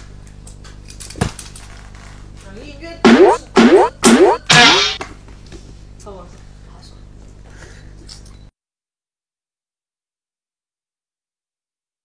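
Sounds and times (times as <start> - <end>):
cartoon boing sound effect: 3.1 - 5.0.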